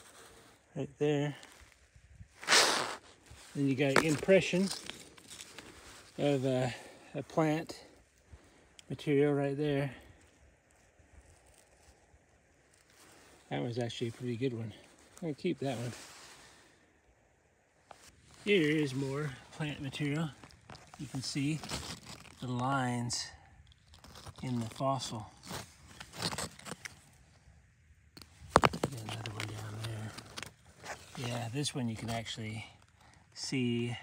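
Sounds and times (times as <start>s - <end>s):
rocks clacking together: 28.2s - 31.3s.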